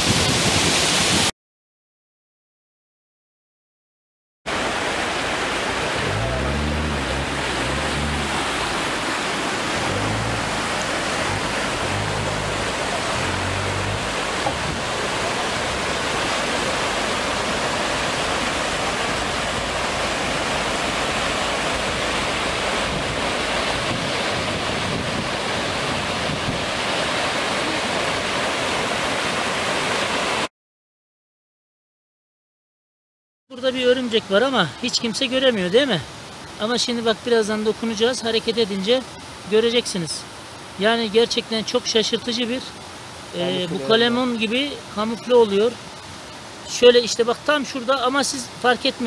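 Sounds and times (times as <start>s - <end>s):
stream rushing over rocks: 0.0s - 1.3s, 4.5s - 30.5s, 33.6s - 49.0s.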